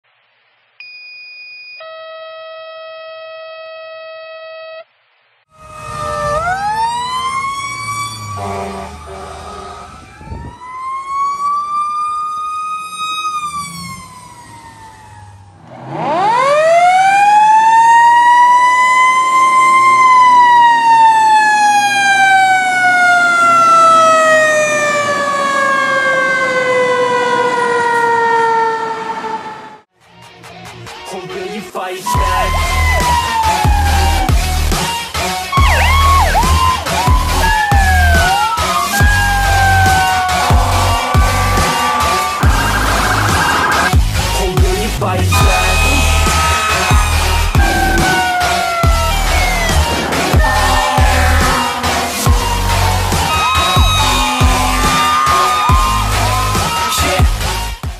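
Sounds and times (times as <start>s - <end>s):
fire truck siren wailing: 5.5s - 29.9s, 32.1s - 44.4s, 45.3s - 57.9s
electronic alert tones: 42.4s - 44.0s, 45.3s - 46.3s.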